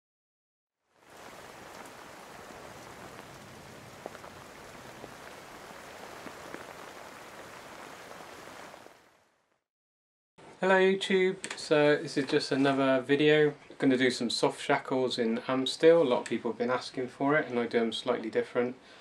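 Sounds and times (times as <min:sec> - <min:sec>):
steady rain: 0:00.9 - 0:09.5.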